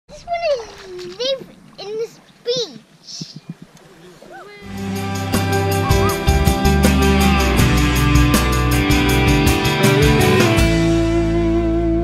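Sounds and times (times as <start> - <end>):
child's high-pitched vocal calls: 5.8 - 6.3.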